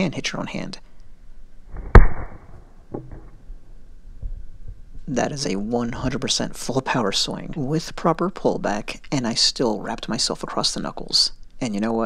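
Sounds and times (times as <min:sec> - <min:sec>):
wooden strike cracking on dummy: 0:01.8 - 0:03.4
faint knocks: 0:02.9 - 0:03.4.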